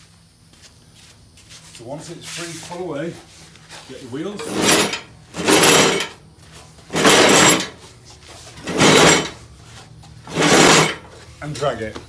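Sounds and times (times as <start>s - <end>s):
metal mower deck scraping concrete: 4.2s - 6.2s, 6.8s - 7.9s, 8.5s - 9.5s, 10.2s - 11.2s.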